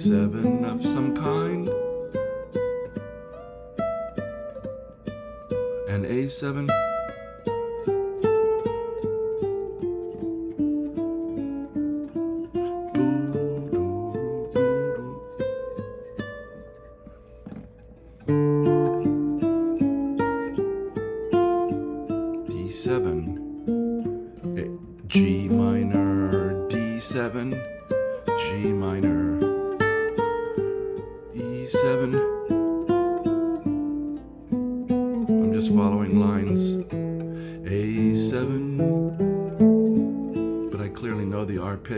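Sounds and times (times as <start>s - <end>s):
classical guitar plucked notes: 0.0s - 41.9s.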